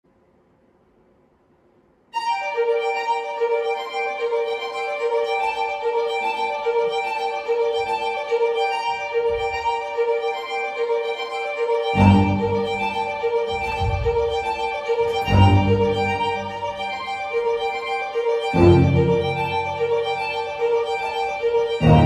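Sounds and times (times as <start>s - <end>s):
deeper music layer: 2.3s - 22.0s.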